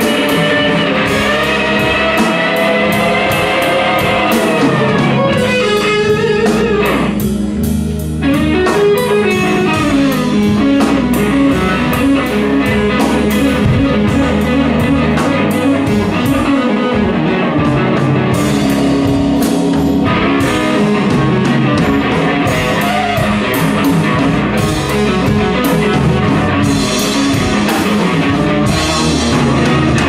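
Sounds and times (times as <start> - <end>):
bass guitar: 0.0 - 30.0
drums with steady cymbals: 0.0 - 30.0
electric guitar lead with bending notes: 0.0 - 30.0
organ: 0.0 - 30.0.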